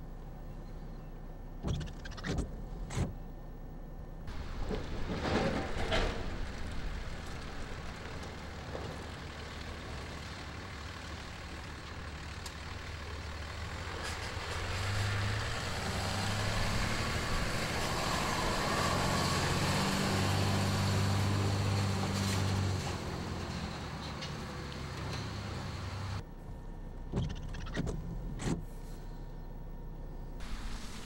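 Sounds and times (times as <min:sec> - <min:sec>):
faint outdoor hum: 0:00.0 - 0:31.0
truck engine passing: 0:04.3 - 0:26.2.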